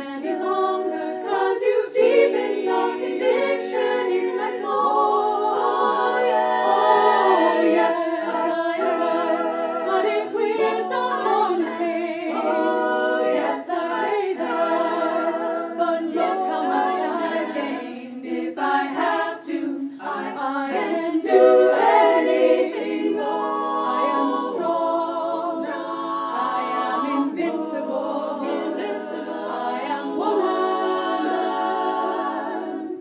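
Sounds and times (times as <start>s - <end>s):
women's choir singing: 0.0s - 33.0s.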